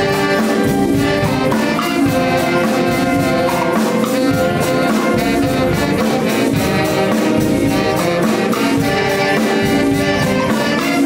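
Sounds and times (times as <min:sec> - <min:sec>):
dance band with horn section: 0:00.0 - 0:11.0.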